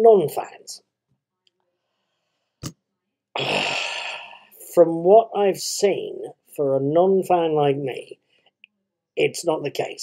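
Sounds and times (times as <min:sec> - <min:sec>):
man sighing: 0:03.4 - 0:04.5.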